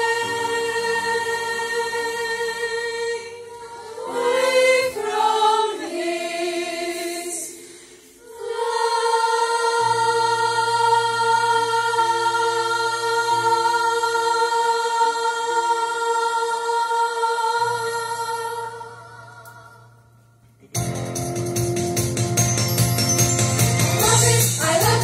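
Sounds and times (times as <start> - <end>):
girls choir singing: 0.0 - 20.0, 24.0 - 25.0.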